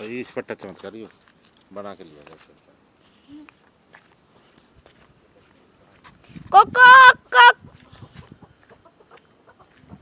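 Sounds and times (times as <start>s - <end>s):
chickens clucking: 7.6s - 10.0s.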